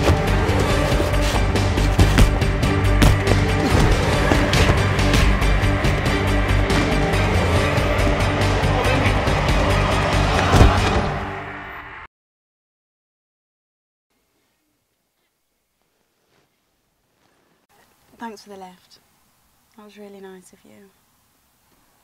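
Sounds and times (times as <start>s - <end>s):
film soundtrack music: 0.0s - 12.1s.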